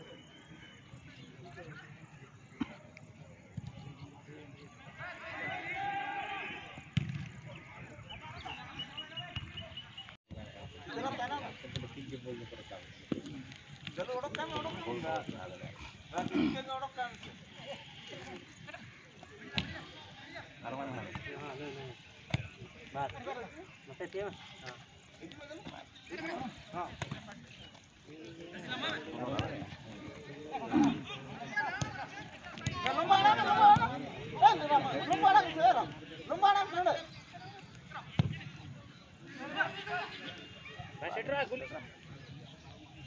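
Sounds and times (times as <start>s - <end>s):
spectators talking and calling out: 0.0s - 43.0s
football being kicked: 7.0s - 7.3s, 25.6s - 27.5s, 38.2s - 38.5s.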